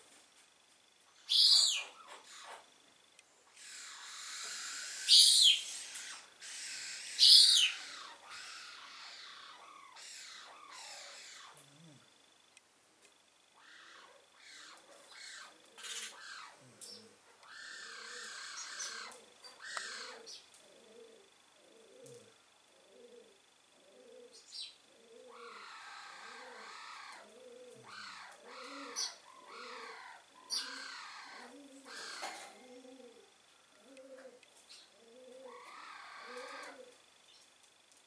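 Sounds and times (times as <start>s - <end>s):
loud sharp high bird chirps: 1.2s - 2.0s.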